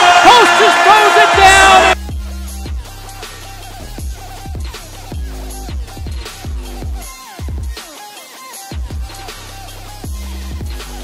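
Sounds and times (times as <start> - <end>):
crowd noise: 0.0 - 2.0
excited commentator shouting: 0.0 - 2.0.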